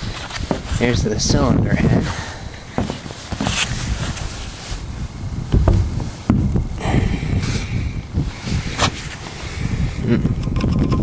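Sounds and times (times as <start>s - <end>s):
microphone handling noise: 0.0s - 11.0s
wind rumble: 0.0s - 11.0s.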